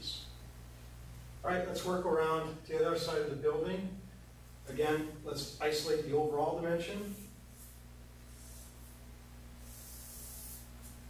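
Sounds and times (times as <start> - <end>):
low electrical hum: 0.0 - 11.0
marker scratching on paper: 9.6 - 11.0.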